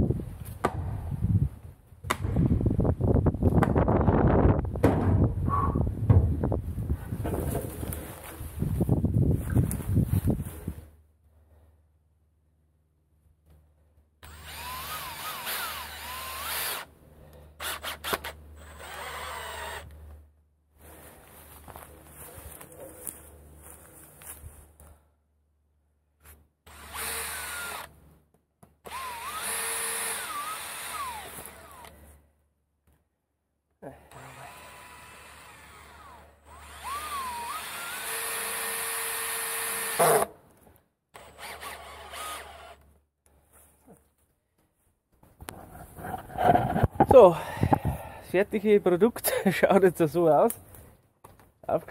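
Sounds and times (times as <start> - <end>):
cordless drill motor whine: 14.2 - 16.9, 17.6 - 20.0, 26.6 - 27.9, 28.8 - 32.0, 34.1 - 40.2, 41.2 - 42.8.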